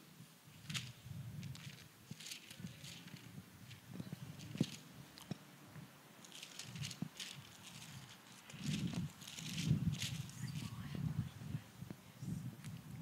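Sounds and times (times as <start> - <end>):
microphone handling rustling: 0.6 - 11.2.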